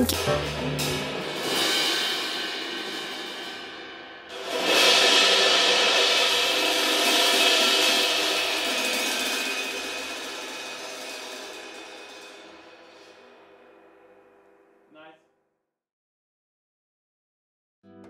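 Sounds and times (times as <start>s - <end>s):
cymbal crash: 0.0s - 14.5s.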